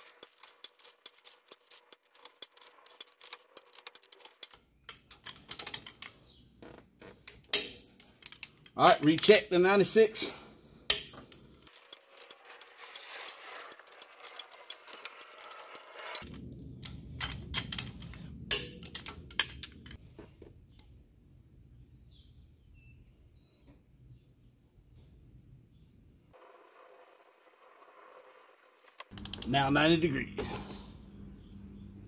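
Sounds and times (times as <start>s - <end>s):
torque wrench clicking: 0.0s - 6.1s, 10.9s - 20.0s.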